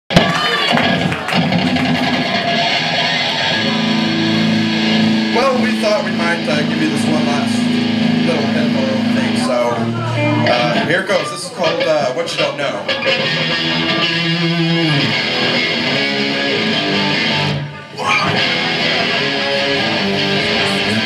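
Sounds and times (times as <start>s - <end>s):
live rock band playing: 0.1s - 21.0s
low guitar note ringing: 3.5s - 10.9s.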